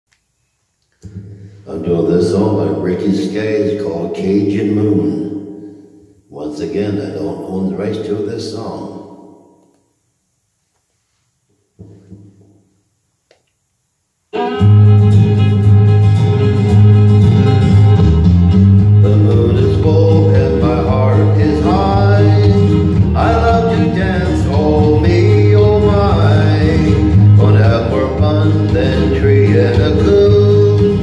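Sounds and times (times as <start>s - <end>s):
country karaoke backing track: 1.0s - 5.4s, 14.4s - 31.0s.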